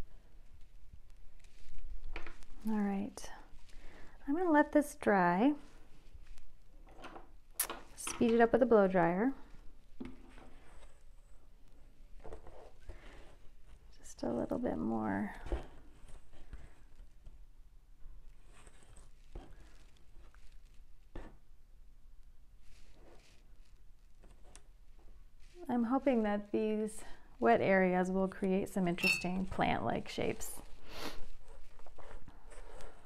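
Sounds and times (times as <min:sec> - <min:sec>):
person's voice: 0:25.6 - 0:30.6.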